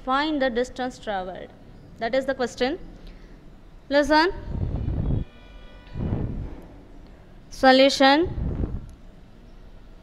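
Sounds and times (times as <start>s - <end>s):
low muffled rumbles: 4.4s - 5.3s, 5.9s - 6.8s, 8.3s - 9.0s
faint horn: 4.6s - 6.6s.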